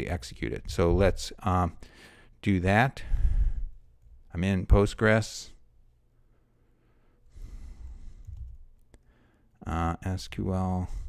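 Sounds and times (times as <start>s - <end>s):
man breathing out softly: 6.6s - 9.5s.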